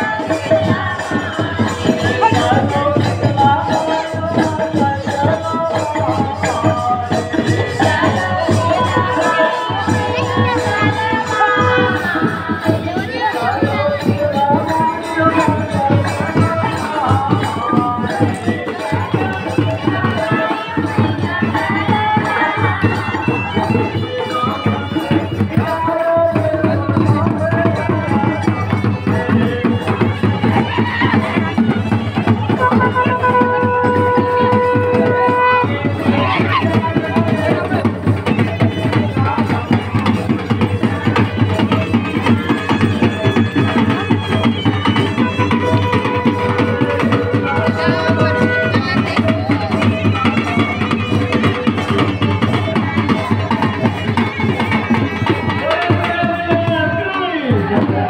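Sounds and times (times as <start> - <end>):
crowd voices: 0.0 - 58.0
fast hand-drumming: 0.0 - 58.0
wind instrument long notes: 6.0 - 58.0.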